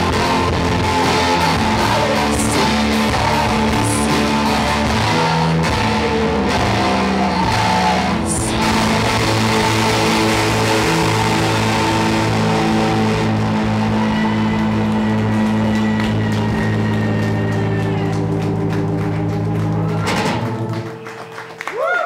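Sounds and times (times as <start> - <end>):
low bass: 0.0 - 21.5
rock band droning chords: 0.0 - 21.5.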